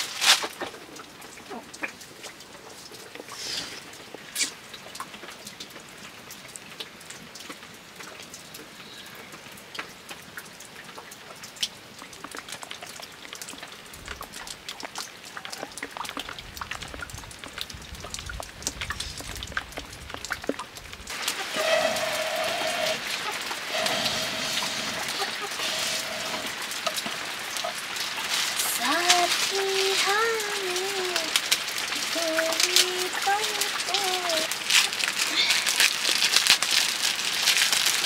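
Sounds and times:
faint hiss: 3.2s - 4.7s, 21.1s - 35.9s
breath blown through a blowpipe: 21.5s - 26.7s.

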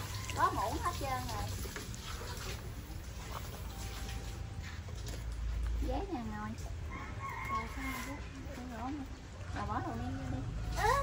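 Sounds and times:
rooster crowing: 6.9s - 8.3s.

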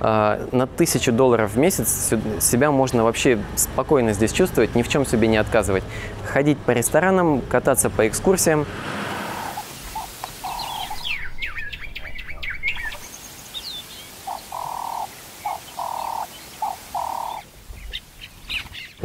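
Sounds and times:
bird hooting: 9.3s - 13.0s, 14.2s - 17.4s
steady faint hiss: 9.6s - 19.0s.

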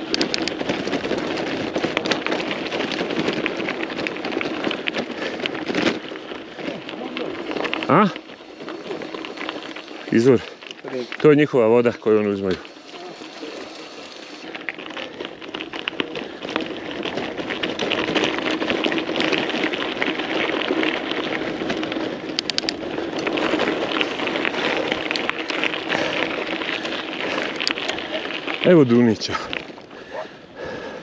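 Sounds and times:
bike rattling over stones: 0.0s - 31.0s
bike tyres crunching on gravel: 0.0s - 31.0s.

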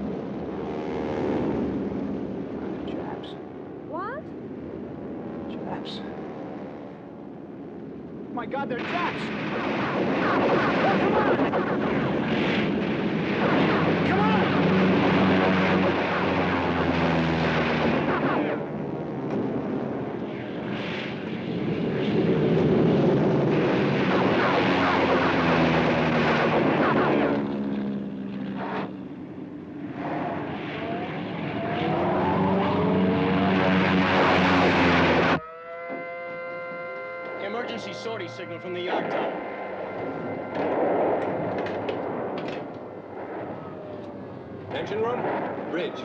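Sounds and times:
bomb explosions: 0.0s - 35.4s, 37.7s - 46.0s
propeller aircraft engines droning: 0.0s - 46.0s
steady held tones: 35.0s - 44.7s.

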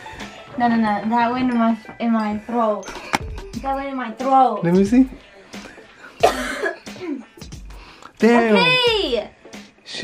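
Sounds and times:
woman coughing: 6.2s - 7.3s.

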